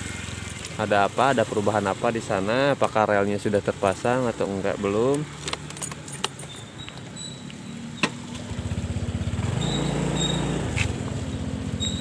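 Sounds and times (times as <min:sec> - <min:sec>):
motorcycle engine running: 0:00.0 - 0:02.6, 0:06.4 - 0:12.0.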